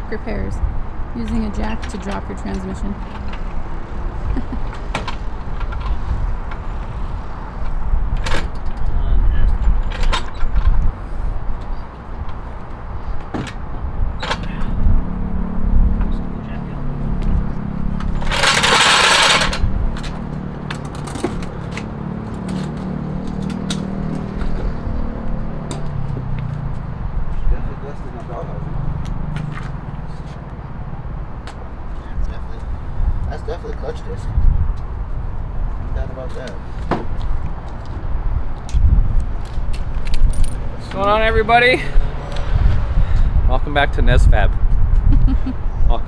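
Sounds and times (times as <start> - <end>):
light metallic clicks and jingles: 39.7 - 41.0.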